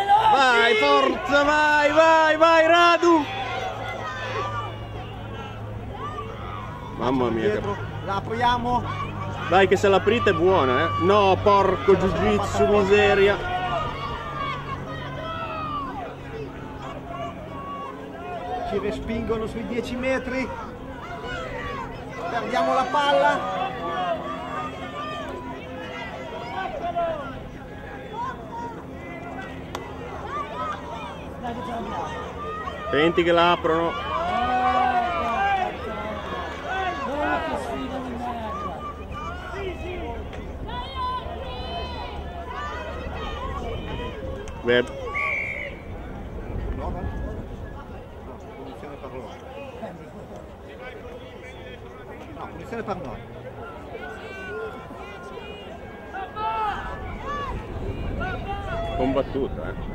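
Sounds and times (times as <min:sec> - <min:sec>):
indistinct voices calling out: 0:00.0 - 0:47.5
background chatter: 0:00.0 - 0:59.9.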